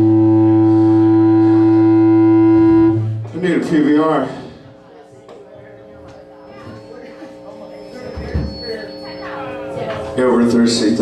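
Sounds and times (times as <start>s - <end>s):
held electric guitar tone: 0.0s - 3.4s.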